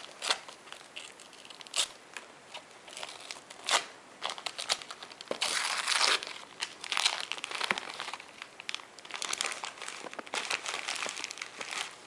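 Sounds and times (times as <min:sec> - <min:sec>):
wrapping paper tearing and crinkling: 0:00.0 - 0:12.0.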